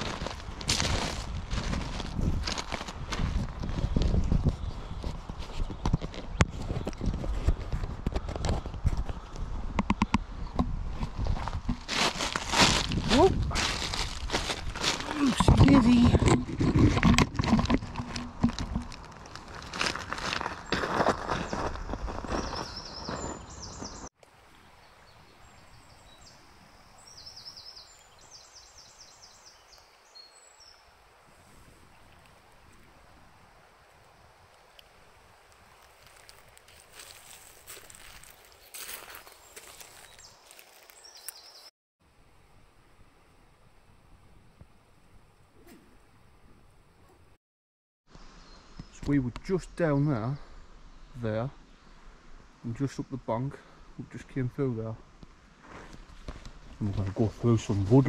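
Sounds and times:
footsteps on loose stones: 0.0 - 9.5, 10.8 - 24.1, 35.5 - 41.7
faint outdoor background: 48.1 - 58.0.

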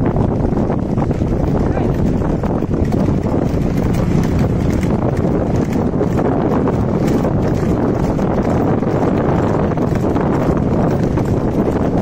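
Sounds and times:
hooves clattering on asphalt: 0.0 - 12.0
low rumble: 0.0 - 12.0.

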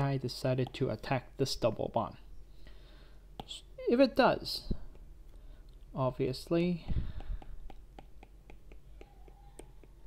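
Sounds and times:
stylus tapping on glass screen: 7.0 - 10.0.

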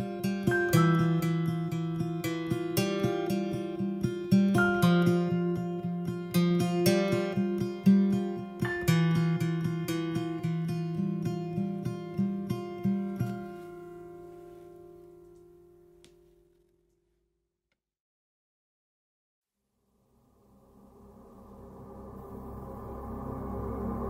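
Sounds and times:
acoustic guitar strumming: 0.0 - 15.9.

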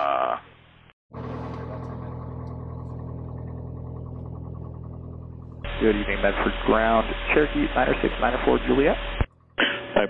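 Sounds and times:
aircraft engine idling: 1.1 - 10.0
radio call: 5.7 - 10.0.

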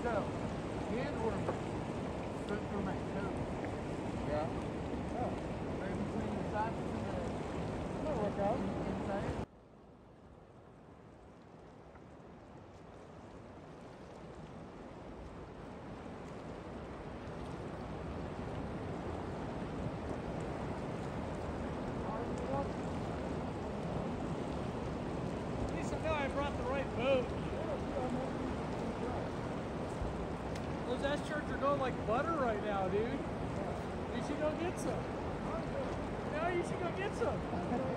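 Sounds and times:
river water rushing: 0.0 - 37.9.

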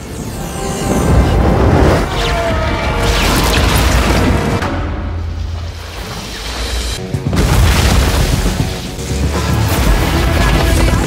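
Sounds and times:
action film music: 0.0 - 11.0.

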